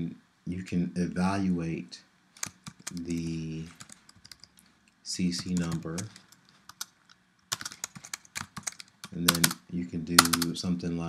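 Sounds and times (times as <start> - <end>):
computer keyboard typing: 2.4 - 9.6, 10.2 - 10.6.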